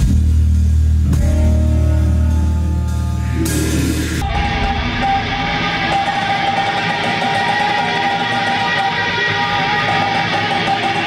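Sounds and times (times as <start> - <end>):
distorted electric guitars: 0.0 - 11.0.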